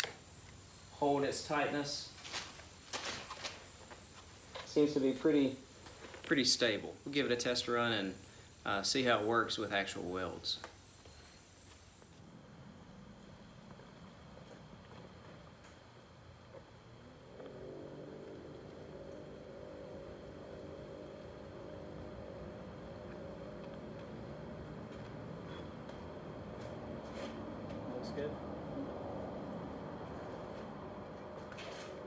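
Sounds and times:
machine humming: 0:00.0 - 0:32.0.

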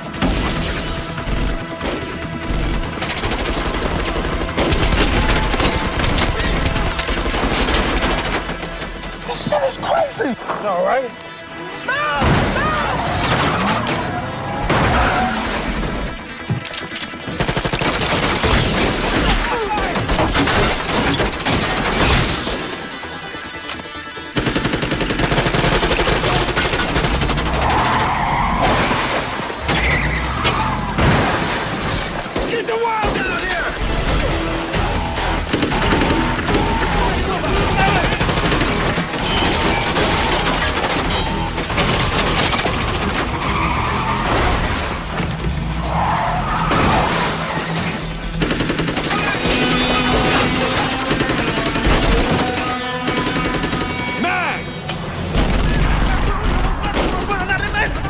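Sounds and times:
action film score music: 0:00.0 - 0:58.0
car noise: 0:12.2 - 0:17.0
gunfire bursts: 0:24.3 - 0:28.1, 0:31.0 - 0:43.4, 0:46.7 - 0:54.2
car skidding: 0:43.1 - 0:48.1.

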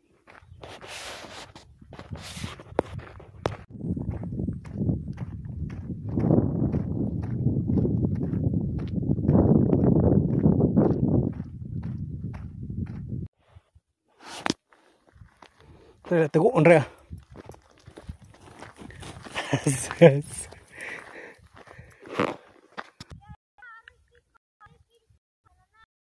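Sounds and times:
footsteps on gravel: 0:00.2 - 0:13.0, 0:14.2 - 0:23.9
rumbling microphone noise: 0:01.9 - 0:13.3.

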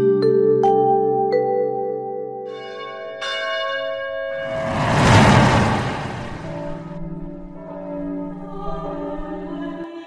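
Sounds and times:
noisy wash: 0:04.4 - 0:07.0.

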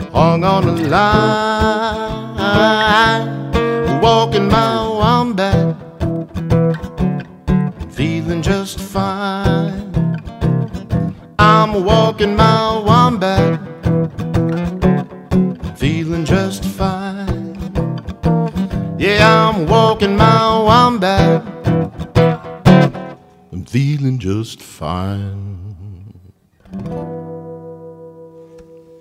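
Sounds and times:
man singing: 0:00.0 - 0:06.0, 0:07.8 - 0:10.1, 0:11.3 - 0:14.0, 0:15.6 - 0:17.9, 0:18.8 - 0:21.8, 0:23.5 - 0:26.4
acoustic guitar strumming: 0:00.0 - 0:24.3, 0:26.6 - 0:29.0.

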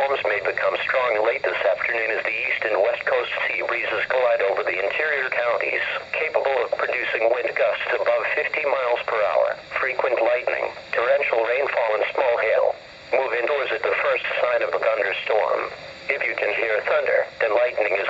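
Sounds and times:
radio broadcast voice through small speaker: 0:00.0 - 0:18.0.

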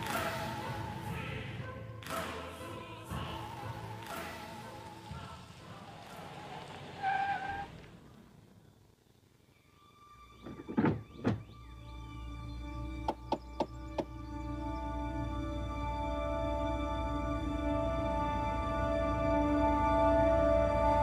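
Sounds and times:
choral music: 0:00.0 - 0:08.4, 0:09.5 - 0:21.0
low suspense music drone: 0:09.9 - 0:21.0.

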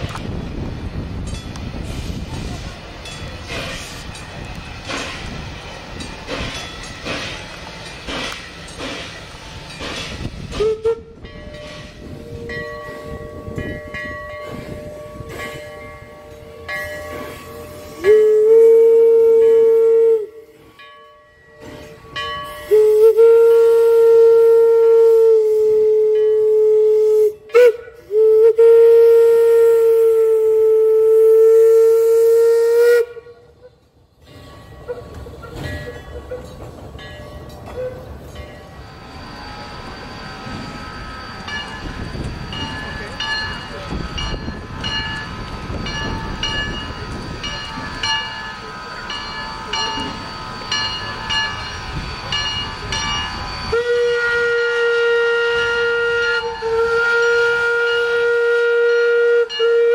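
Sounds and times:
train rumbling past: 0:00.0 - 0:59.9
steam locomotive chime whistle: 0:08.6 - 0:59.9.

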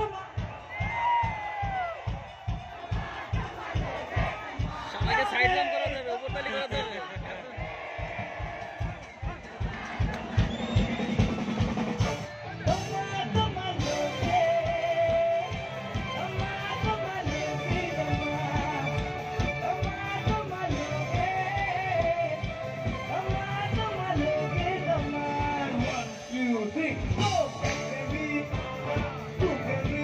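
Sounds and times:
drum kit steady beat: 0:00.0 - 0:30.0
live band through loudspeakers: 0:00.0 - 0:30.0.

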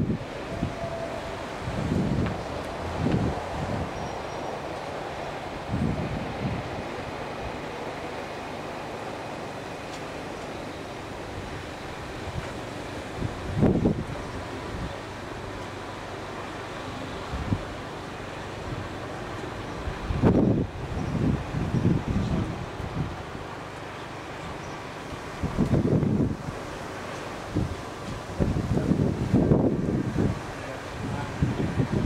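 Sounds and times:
steady outdoor hiss: 0:00.0 - 0:32.0
wind buffeting microphone: 0:00.0 - 0:32.0.

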